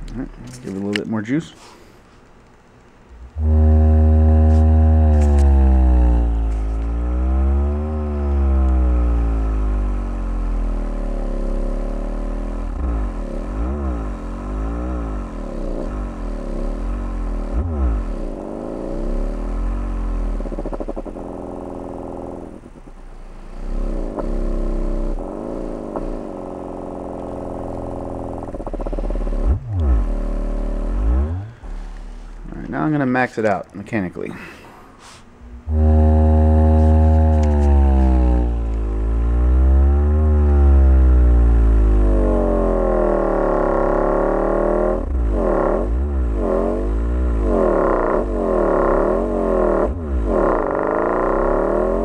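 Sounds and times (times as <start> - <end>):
subwoofer playing loud bass: 3.2 - 22.7, 23.4 - 33.1, 35.6 - 52.0.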